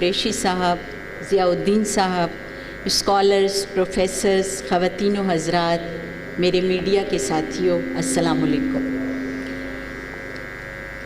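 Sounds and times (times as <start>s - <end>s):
electrical mains hum: 0.0s - 11.0s
low tone: 5.0s - 11.0s.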